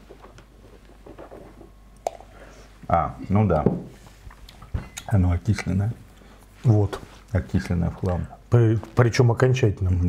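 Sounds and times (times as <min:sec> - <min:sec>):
man speaking: 0:02.9 - 0:03.9, 0:05.0 - 0:10.0.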